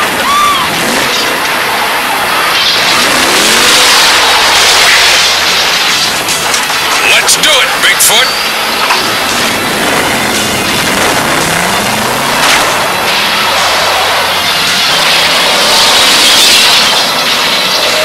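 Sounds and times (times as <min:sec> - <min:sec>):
monster truck engine revving: 0:00.0 - 0:18.0.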